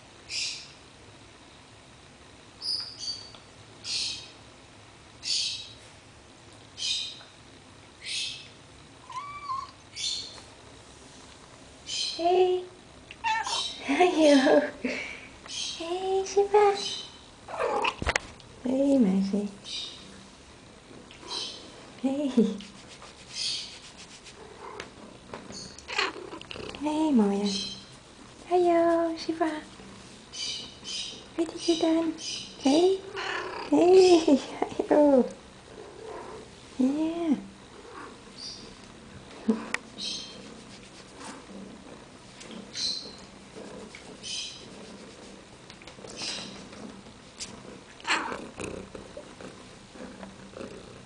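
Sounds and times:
cat purring: 0:22.7 - 0:30.2, 0:37.5 - 0:51.0.

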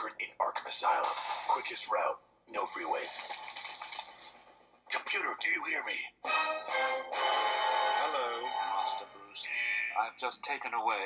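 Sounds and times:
rapid keyboard typing: 0:02.6 - 0:04.3.

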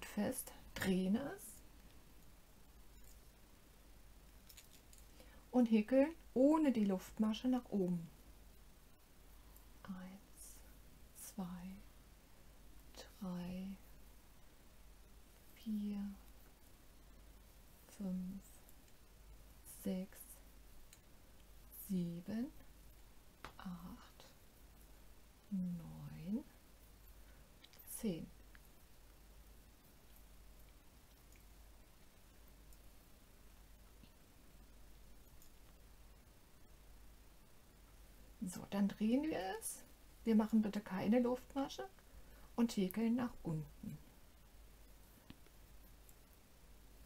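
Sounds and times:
rustles of yarn and crochet hook: 0:00.0 - 0:36.4, 0:37.3 - 0:47.0
faint room hiss: 0:00.0 - 0:47.0.

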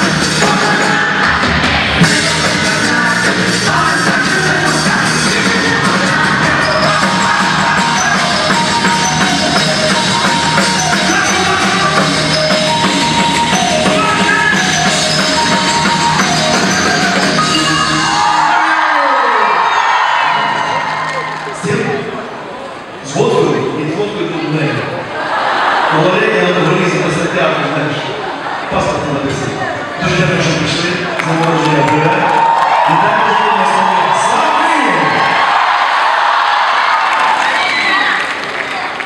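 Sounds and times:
drum kit: 0:00.0 - 0:18.6
live rock band playing: 0:00.0 - 0:18.6
person singing: 0:00.0 - 0:18.6
crowd cheering and screaming: 0:03.8 - 0:22.5, 0:31.2 - 0:39.0.

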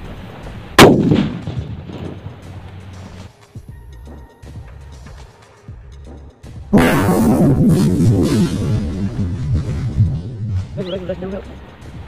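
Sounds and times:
firecracker bang with rumble: 0:00.8 - 0:02.3.

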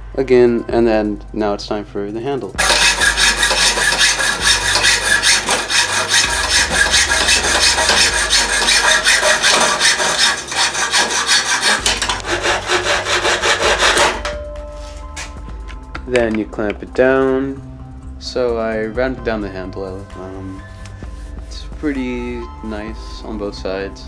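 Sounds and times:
background music: 0:00.0 - 0:24.0
hacksaw cutting steel: 0:02.6 - 0:14.4.

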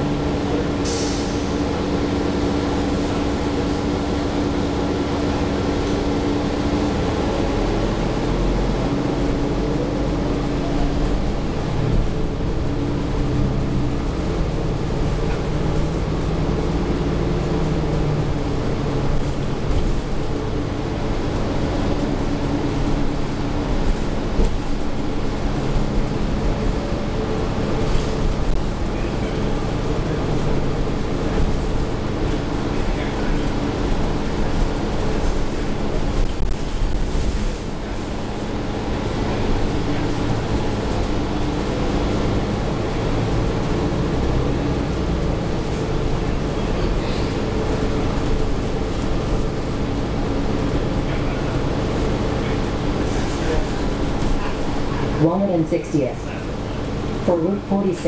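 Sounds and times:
bus drivetrain whine: 0:00.0 - 0:58.0
road noise: 0:00.0 - 0:58.0.

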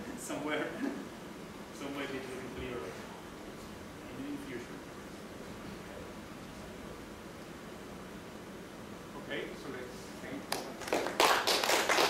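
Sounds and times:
audience applauding: 0:10.5 - 0:12.0.

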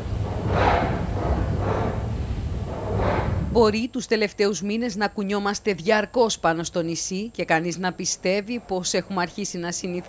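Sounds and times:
low rumble of shaking room: 0:00.0 - 0:10.0.

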